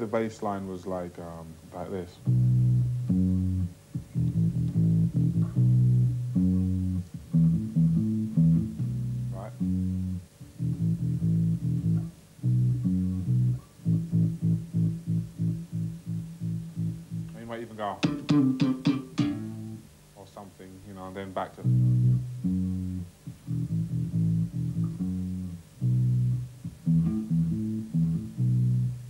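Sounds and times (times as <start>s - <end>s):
electric bass guitar reggae line: 1.4s - 20.1s, 21.2s - 29.0s.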